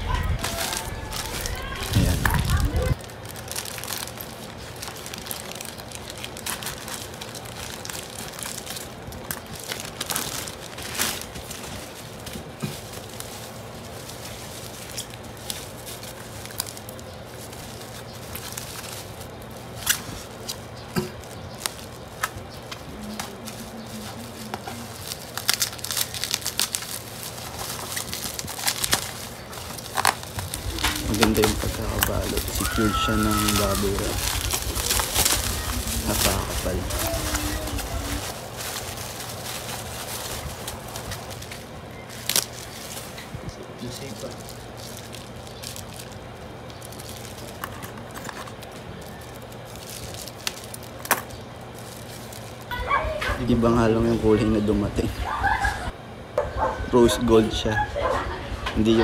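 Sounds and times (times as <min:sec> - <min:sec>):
plastic crinkling and rustling: 0:00.0 - 0:55.4
bubble wrap crackles: 0:00.0 - 0:56.0
scissors cutting plastic: 0:17.8 - 0:32.7.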